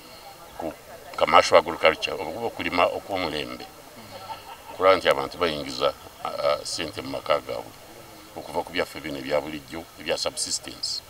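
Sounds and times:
man speaking into microphone: 0.6 - 11.0.

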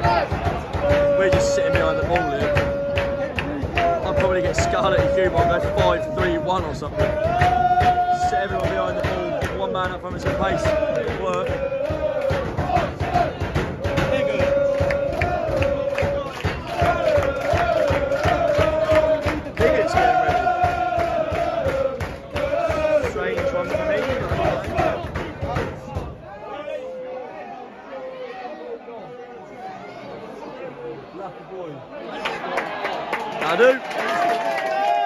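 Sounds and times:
crowd chanting in unison: 0.0 - 30.9
crowd chatter: 0.0 - 35.0.

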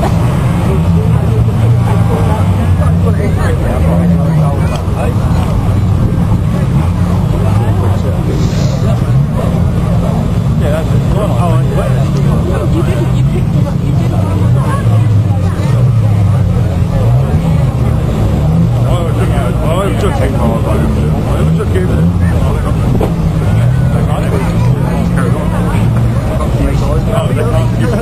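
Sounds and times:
people's voices: 0.0 - 28.0
racing car engines revving: 0.0 - 28.0.

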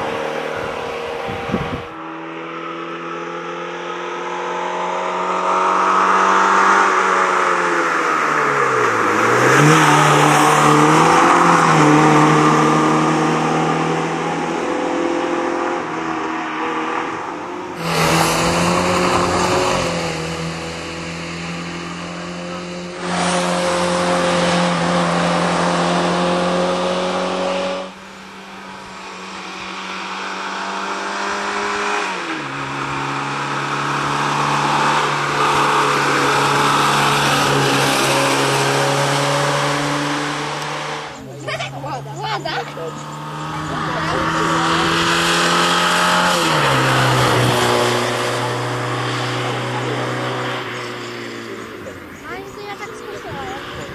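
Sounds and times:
rally car engine driven hard: 0.0 - 53.9.

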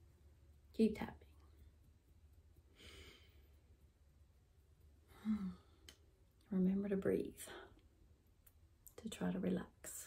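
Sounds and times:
woman sighing: 5.1 - 5.8.

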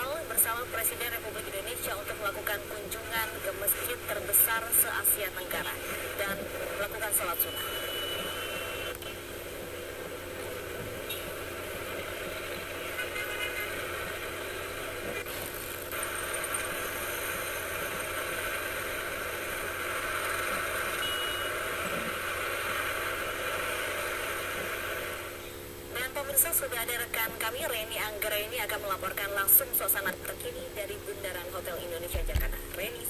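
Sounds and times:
city road traffic: 6.6 - 16.4
short high beeps: 7.5 - 8.7, 21.0 - 21.5.

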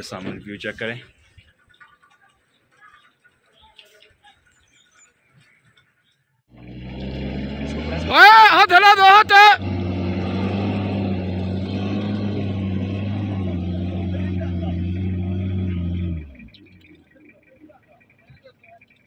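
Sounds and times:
engine at high revs: 6.5 - 17.3
man shouting: 7.8 - 9.7.

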